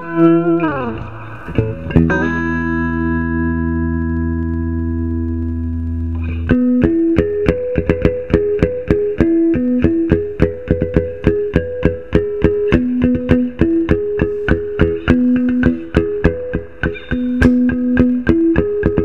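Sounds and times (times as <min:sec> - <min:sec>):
overdriven electric guitar: 0:00.0 - 0:19.0.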